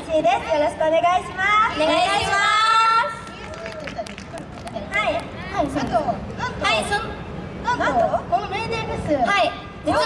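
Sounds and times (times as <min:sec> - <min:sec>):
outdoor crowd murmur: 0:00.0 - 0:10.0.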